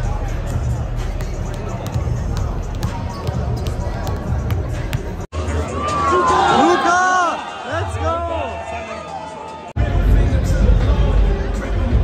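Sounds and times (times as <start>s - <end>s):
crowd chatter echoing: 0.0s - 12.0s.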